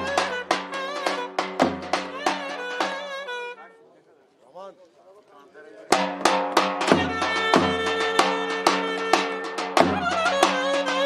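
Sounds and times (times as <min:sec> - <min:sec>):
folk dance music with drums: 0:00.0 - 0:03.7, 0:05.7 - 0:11.0.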